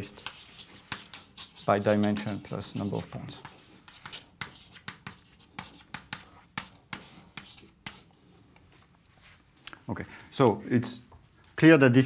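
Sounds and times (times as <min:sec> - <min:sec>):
chalk tapping and scraping: 0:00.0 - 0:09.2.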